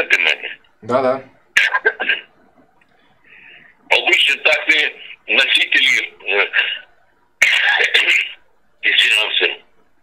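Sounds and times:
man speaking: 0:00.0 - 0:01.8, 0:03.9 - 0:09.7.

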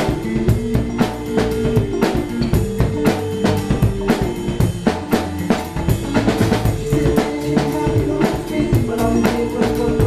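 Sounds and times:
acoustic drum kit hip-hop beat: 0:00.0 - 0:10.0
recorded instrumental with bass and keys: 0:00.0 - 0:10.0.

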